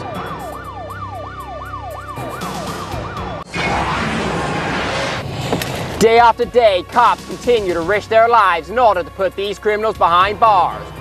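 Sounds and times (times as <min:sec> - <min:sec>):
police siren yelping: 0:00.0 - 0:05.2.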